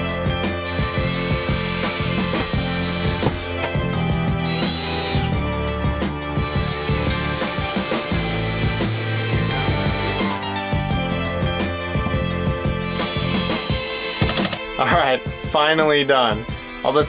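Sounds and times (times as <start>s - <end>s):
background music: 0.0s - 17.0s
cordless drill whining: 0.6s - 5.6s, 6.4s - 10.6s, 12.8s - 14.7s.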